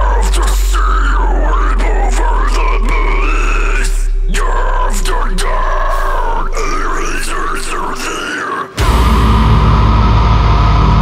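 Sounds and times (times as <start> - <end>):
heavy metal music: 0.0 - 11.0.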